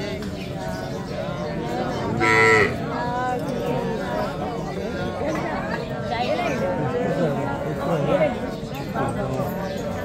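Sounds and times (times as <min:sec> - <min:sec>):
low background voices: 0:00.0 - 0:10.0.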